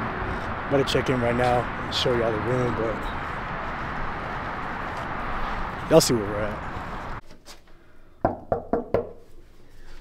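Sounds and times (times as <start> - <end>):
knuckles knocking on door: 8.3 - 9.1.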